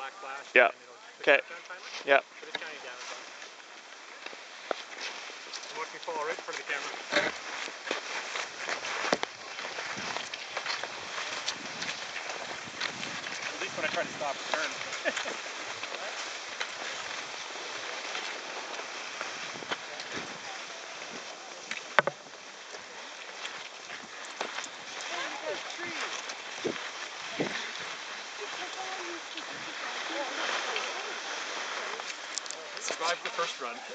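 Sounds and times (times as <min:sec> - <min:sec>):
skis swishing on snow: 0:00.1 - 0:33.9.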